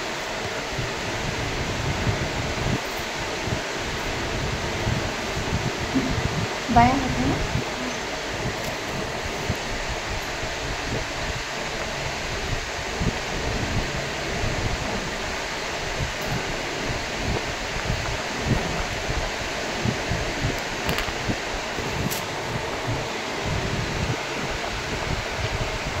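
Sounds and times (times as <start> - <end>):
hissing room noise: 0.0 - 26.0.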